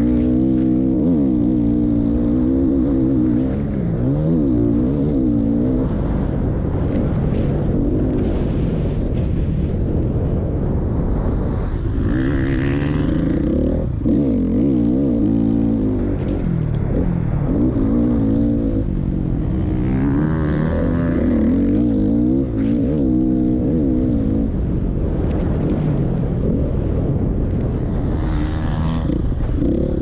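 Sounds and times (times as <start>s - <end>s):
wind and track rumble: 0.0s - 30.0s
motocross bike engine revving: 11.9s - 24.5s, 28.0s - 30.0s.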